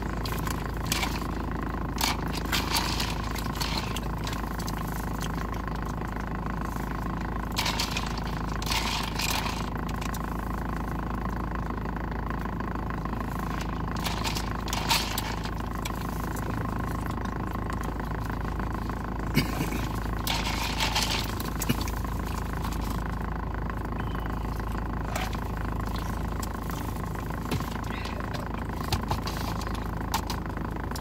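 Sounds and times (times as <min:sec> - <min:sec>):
car engine idling: 0:00.0 - 0:31.0
crackly eating noises: 0:00.0 - 0:31.0.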